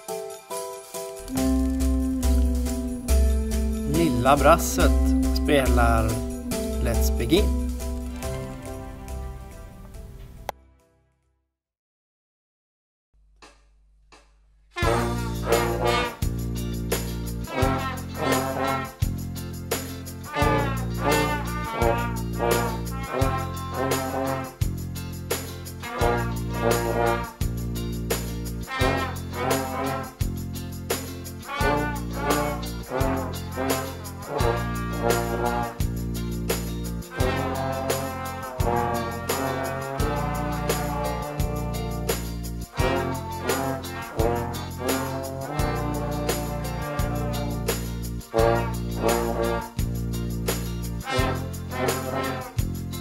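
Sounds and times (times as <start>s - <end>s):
bass accompaniment: 1.2s - 10.5s, 14.8s - 53.0s
brass group playing a tune: 1.3s - 9.2s, 14.8s - 16.3s, 17.5s - 19.0s, 20.3s - 24.5s, 25.9s - 27.3s, 28.7s - 30.1s, 31.5s - 35.8s, 37.1s - 42.1s, 42.7s - 47.7s, 48.3s - 49.8s, 51.0s - 52.6s
sustained low bass notes: 1.3s - 9.5s.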